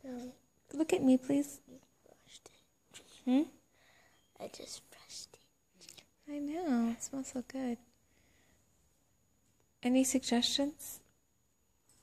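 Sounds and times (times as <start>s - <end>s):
soft breathing: 3.7s - 4.3s, 8.0s - 8.8s.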